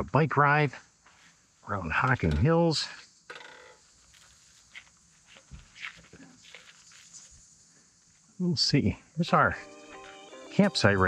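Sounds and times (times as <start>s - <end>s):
bicycle clicks and tyre rustles: 3.3s - 7.5s.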